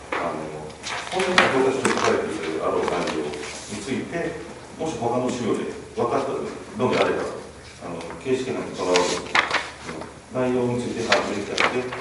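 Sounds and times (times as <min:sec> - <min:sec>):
person talking: 0:00.1 - 0:12.0.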